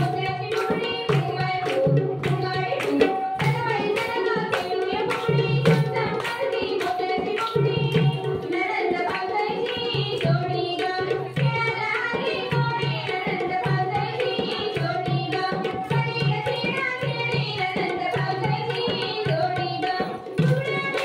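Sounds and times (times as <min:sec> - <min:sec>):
hand claps: 0:00.0 - 0:13.8, 0:19.9 - 0:21.0
drum beat: 0:00.0 - 0:15.3
woman singing into a microphone: 0:00.0 - 0:21.0.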